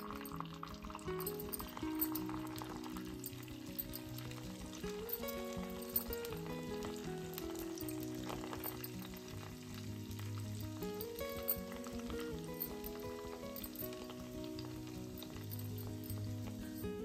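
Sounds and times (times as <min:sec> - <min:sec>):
background music: 0:00.0 - 0:17.0
oil sizzling and crackling: 0:00.0 - 0:17.0.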